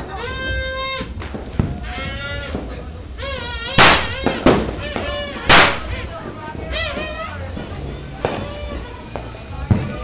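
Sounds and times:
firecrackers banging: 0.0 - 10.0.

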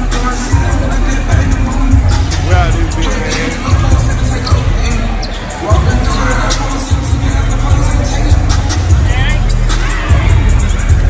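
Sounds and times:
music in a large hall: 0.0 - 11.0
people talking: 0.2 - 8.4.

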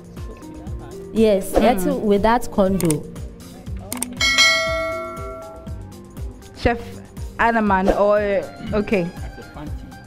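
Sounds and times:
low background music: 0.0 - 10.0
click: 3.9 - 4.2
bright bell chime: 4.2 - 5.8.

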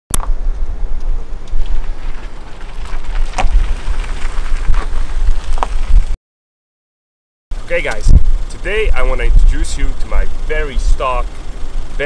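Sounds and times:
wind buffeting microphone: 0.4 - 6.2, 7.9 - 9.5.

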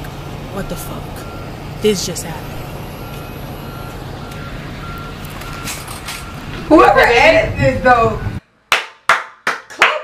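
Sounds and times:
engine rumbling: 0.0 - 8.7
reversing alarm beeping: 0.6 - 8.4.

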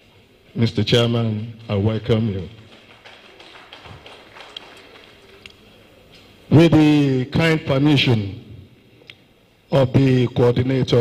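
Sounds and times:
audience clapping: 1.4 - 5.8.

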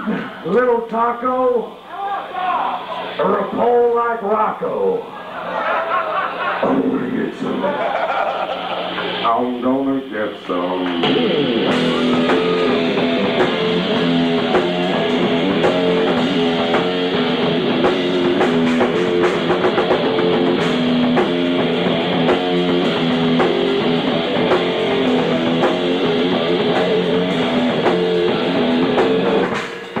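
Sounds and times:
drums: 0.0 - 30.0
electric guitar riff: 6.5 - 9.6, 10.5 - 30.0.

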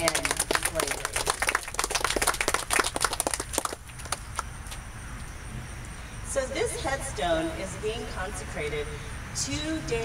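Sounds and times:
audience applauding: 0.0 - 4.4.

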